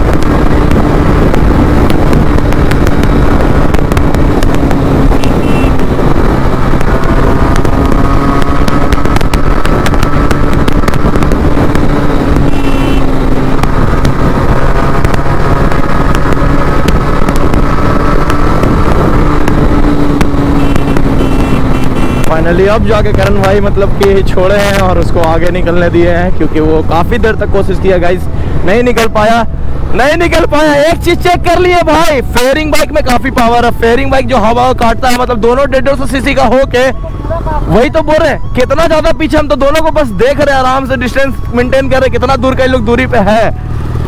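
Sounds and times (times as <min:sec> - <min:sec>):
wind rush on microphone: 0:00.0 - 0:30.9
motorcycle engine cruising: 0:00.0 - 0:44.0.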